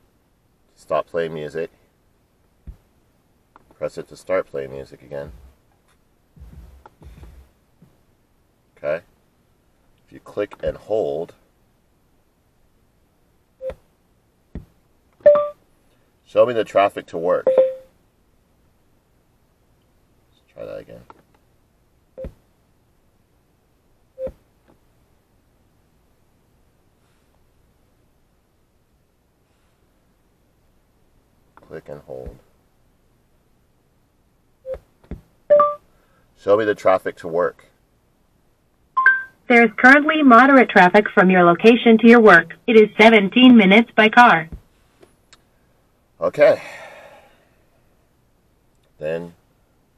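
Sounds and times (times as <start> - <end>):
short beep: 15.3 - 15.6, 17.5 - 17.9, 35.5 - 35.8, 39.0 - 39.4.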